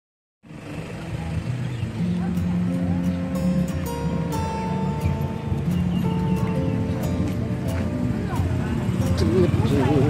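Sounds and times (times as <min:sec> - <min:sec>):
vehicle engine running: 0:00.4 - 0:10.0.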